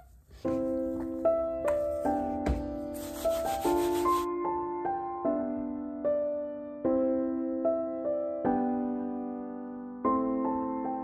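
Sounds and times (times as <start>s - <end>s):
rubbing scrubbing noise: 0.0s - 4.3s
soft piano chords: 0.0s - 11.0s.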